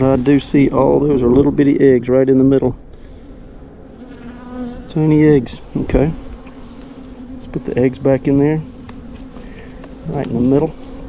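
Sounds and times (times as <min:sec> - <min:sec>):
honeybees buzzing: 0:00.0 - 0:11.0.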